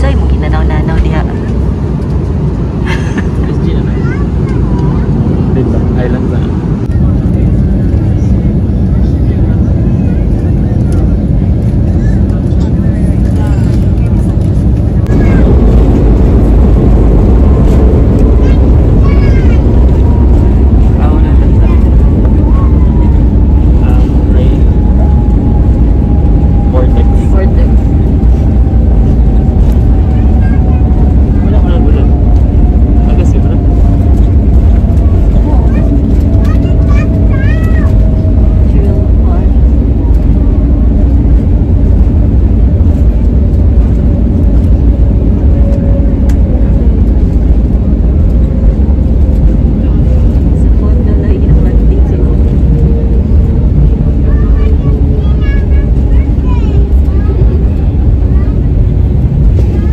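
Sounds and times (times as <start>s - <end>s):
airliner cabin rumble: 0.0s - 59.9s
jet engine whine winding down: 0.0s - 59.9s.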